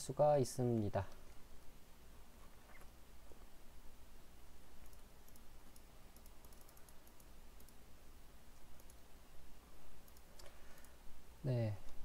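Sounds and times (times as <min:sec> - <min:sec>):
low steady hum: 0:00.0 - 0:12.0
computer clicks: 0:04.8 - 0:07.8, 0:08.7 - 0:09.1, 0:10.0 - 0:11.0.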